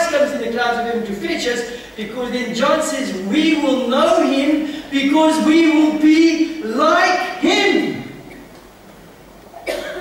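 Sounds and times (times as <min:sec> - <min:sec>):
person coughing: 0:09.6 - 0:10.0.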